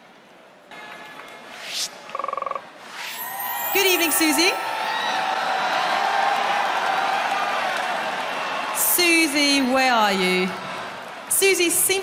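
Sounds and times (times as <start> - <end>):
electronic whoosh: 1.5 - 4.2.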